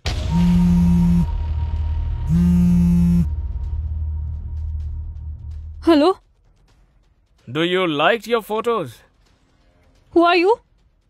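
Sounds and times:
low steady music drone: 0.0s - 6.1s
mobile phone vibrating: 0.3s - 1.4s, 2.3s - 3.3s.

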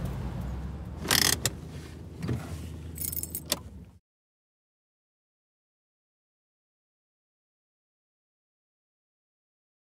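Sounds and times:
low rumbling ambience: 0.0s - 4.0s.

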